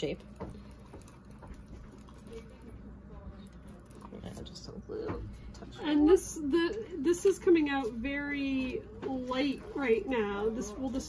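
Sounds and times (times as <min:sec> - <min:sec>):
soft clicks of paint mixing: 0:00.0 - 0:05.8
room hum: 0:00.0 - 0:11.0.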